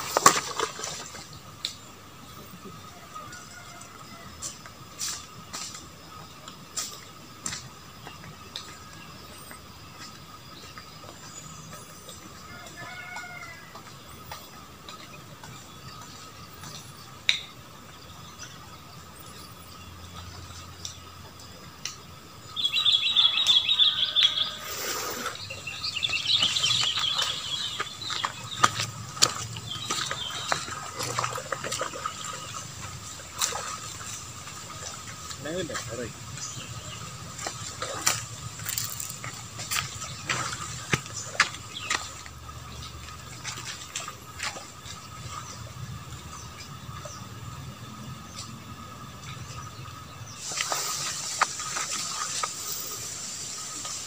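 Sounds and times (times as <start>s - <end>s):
small birds chirping: 4.4s - 54.0s.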